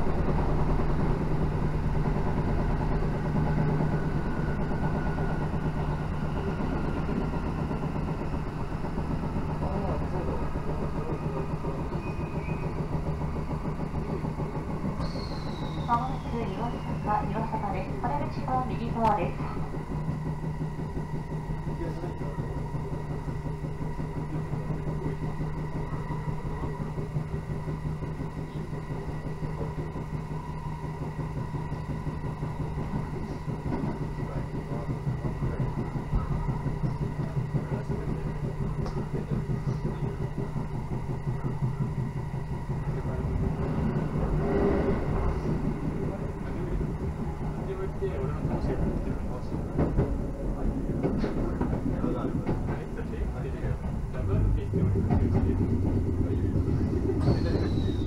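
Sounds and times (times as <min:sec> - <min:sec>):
train running hum: 0:00.0 - 0:58.0
train wheels clacking: 0:00.0 - 0:58.0.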